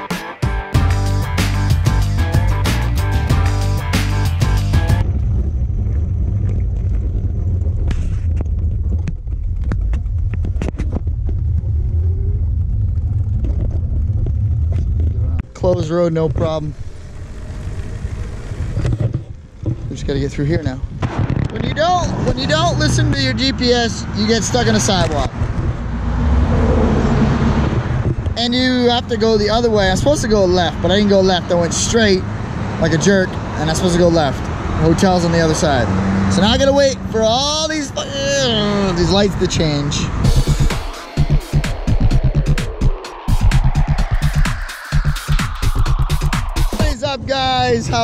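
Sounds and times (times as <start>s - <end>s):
background music: 0.0s - 5.0s, 40.2s - 48.0s
low rumble of passing cars: 3.3s - 48.0s
wind noise on microphone: 5.0s - 15.6s, 18.0s - 22.9s, 24.9s - 28.4s, 41.7s - 48.0s
trike rattling over rough road: 5.0s - 22.0s.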